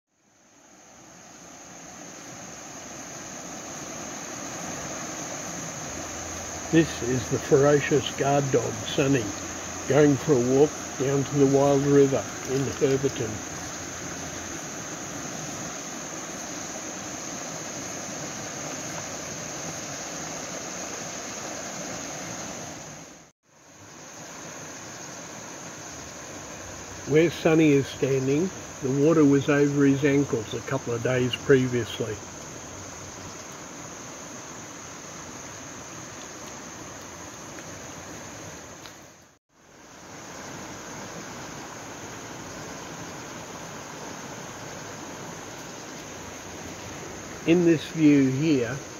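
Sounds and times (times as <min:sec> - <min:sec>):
high insect drone: 0:00.1 - 0:48.9
river rushing: 0:00.2 - 0:48.9.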